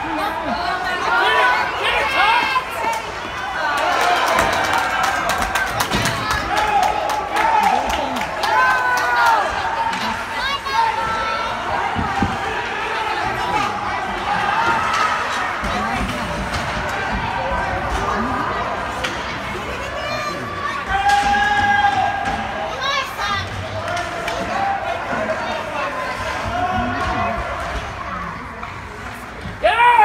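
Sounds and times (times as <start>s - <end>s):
hockey sticks clacking on puck: 13.6s - 19.9s, 20.8s - 29.6s
spectators shouting: 19.8s - 27.8s.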